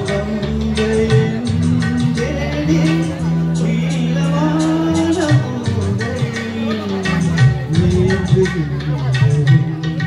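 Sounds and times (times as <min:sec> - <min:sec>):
man singing into a microphone: 0:00.0 - 0:10.0
music with a steady beat: 0:00.0 - 0:10.0.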